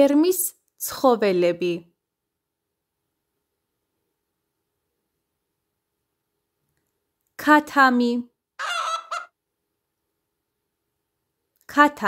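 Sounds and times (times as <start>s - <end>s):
chicken squawking: 8.6s - 9.4s.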